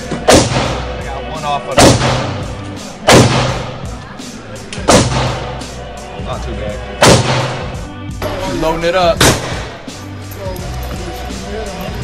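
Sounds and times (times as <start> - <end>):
gunshots echoing indoors: 0.2 - 1.0, 1.8 - 2.5, 3.1 - 3.8.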